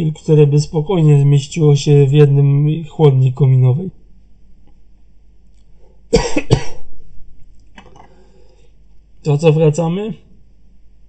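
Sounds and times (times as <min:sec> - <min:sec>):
person coughing: 0:06.1 - 0:06.9.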